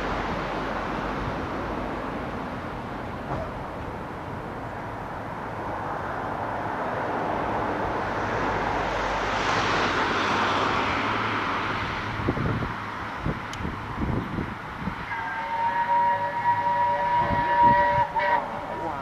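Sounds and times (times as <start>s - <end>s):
steam locomotive rumble: 0.0s - 19.0s
steam whistle long blast: 15.1s - 18.6s.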